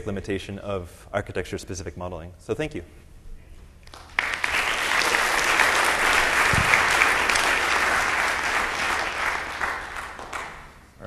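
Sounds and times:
audience applauding: 3.9 - 10.8.

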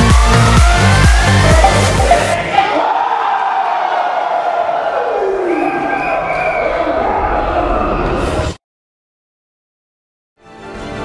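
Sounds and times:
crowd shouting and cheering: 0.0 - 8.5.

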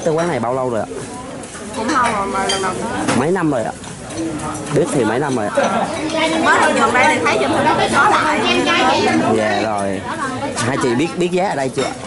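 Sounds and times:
restaurant background clatter: 0.0 - 12.0
dishes and cutlery clinking: 1.4 - 7.4, 10.6 - 12.0.

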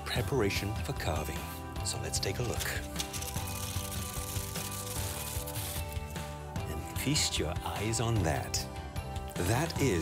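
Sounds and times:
soft background music: 0.0 - 10.0
aluminium foil crinkling: 2.4 - 6.0.

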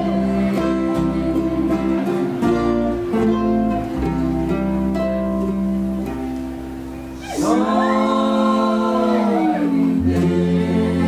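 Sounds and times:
person singing: 0.0 - 3.6, 7.2 - 11.0
acoustic folk band playing: 0.0 - 11.0.

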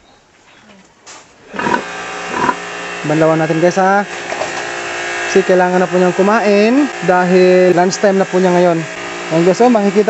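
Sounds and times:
pig grunting: 1.4 - 2.7
pressure washer spraying: 1.5 - 10.0.

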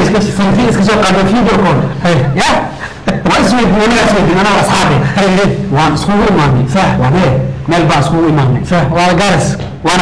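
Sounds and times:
man talking animatedly: 0.0 - 10.0.

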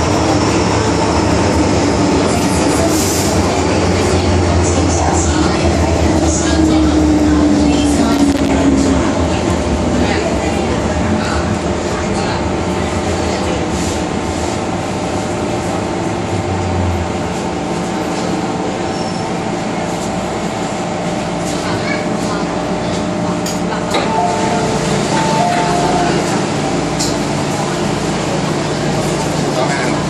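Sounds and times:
train rumble: 0.0 - 30.0
train whine falling in pitch: 24.0 - 26.6.

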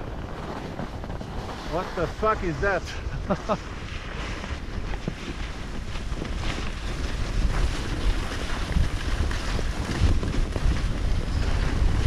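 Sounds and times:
skis scraping on snow: 0.0 - 12.0
wind buffeting microphone: 0.0 - 12.0.

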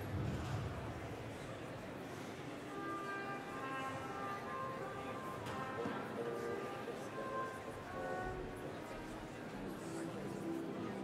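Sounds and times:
murmur of audience chatter: 0.0 - 11.0.

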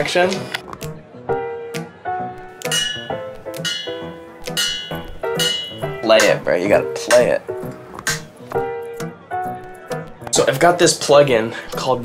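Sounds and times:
slow piano-like notes: 0.7 - 10.5.

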